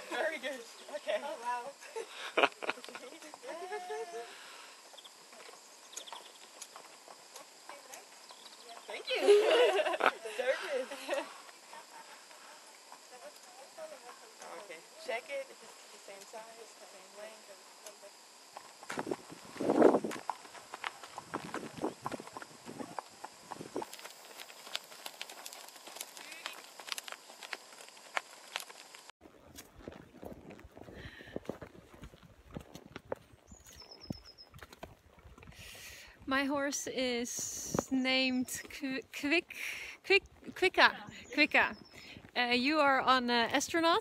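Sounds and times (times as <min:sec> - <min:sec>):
horse hooves on pavement: 0:04.8 - 0:10.1, 0:10.7 - 0:35.7.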